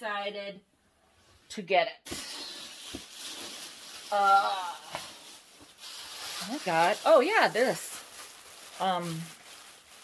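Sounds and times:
wrapping material rustling: 0:02.1 - 0:10.0.

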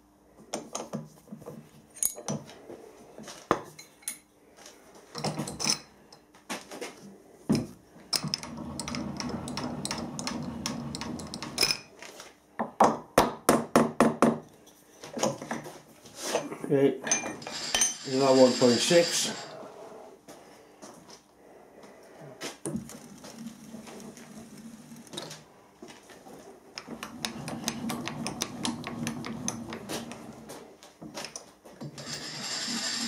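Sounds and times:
steel pieces clinking in a vise: 0:17.1 - 0:19.5
steady mechanical noise: 0:17.1 - 0:20.4, 0:22.6 - 0:33.0.

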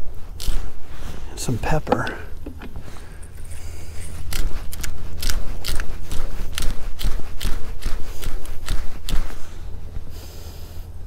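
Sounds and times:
pepper grinder crunching peppercorns: 0:00.0 - 0:00.8, 0:04.1 - 0:09.4.

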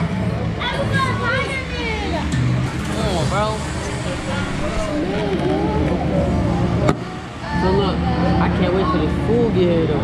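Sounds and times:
steady low rumble: 0:03.2 - 0:07.4.

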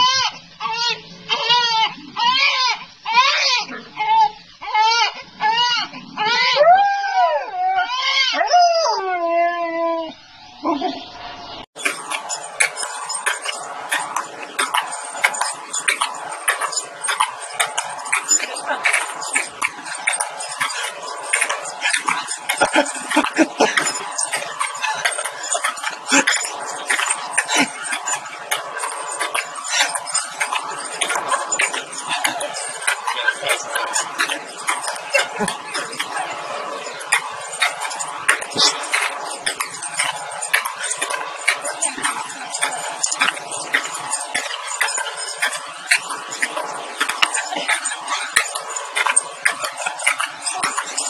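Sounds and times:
dog howling: 0:01.4 - 0:10.2
background voices: 0:10.7 - 0:51.0.

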